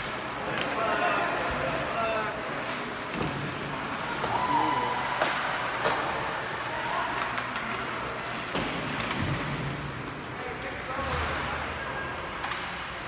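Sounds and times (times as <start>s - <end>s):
hockey sticks and puck clacking: 0.0s - 11.5s, 12.1s - 13.0s
spectators' voices: 0.0s - 13.0s.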